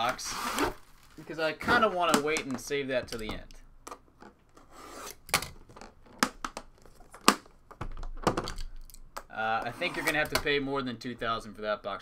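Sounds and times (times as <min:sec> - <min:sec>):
tool scraping metal case seam: 0:09.6 - 0:10.4.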